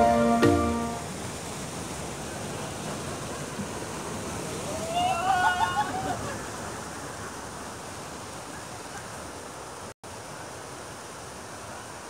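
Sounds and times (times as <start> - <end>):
background music with drum hits: 0.0 - 1.0
river water rushing: 0.0 - 12.0.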